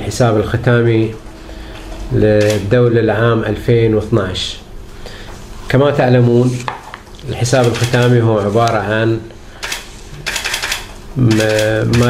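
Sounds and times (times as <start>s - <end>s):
man talking: 0.0s - 1.2s, 2.1s - 4.7s, 5.7s - 9.4s, 11.2s - 12.0s
rattle of dry clicks: 9.6s - 12.0s.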